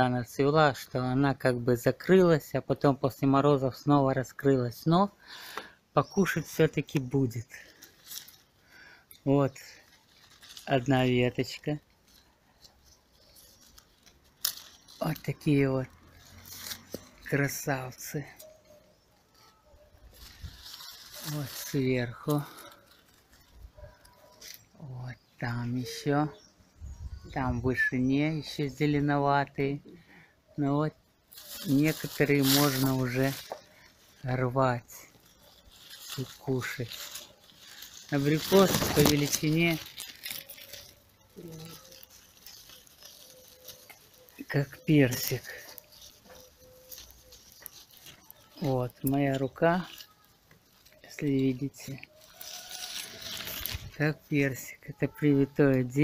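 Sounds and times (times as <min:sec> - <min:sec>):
leaves and twigs rustling: 0:00.0 - 0:56.0
sharp crackle: 0:03.1 - 0:26.5, 0:31.2 - 0:56.0.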